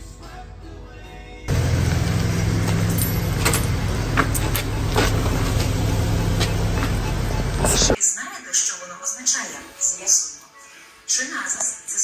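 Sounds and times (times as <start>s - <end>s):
street noise: 1.5s - 8.0s
vehicle engine humming: 1.5s - 8.0s.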